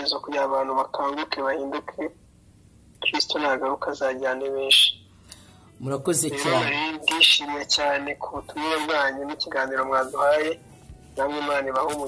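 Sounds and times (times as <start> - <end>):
person talking: 5.8 - 10.6.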